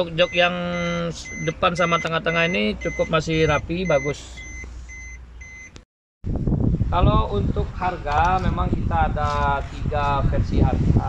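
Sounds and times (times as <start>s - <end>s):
man's voice: 0.0s - 4.2s, 6.9s - 11.0s
dashboard warning chime beeping: 0.0s - 5.8s
engine humming: 0.0s - 10.1s
wind noise: 6.2s - 11.0s.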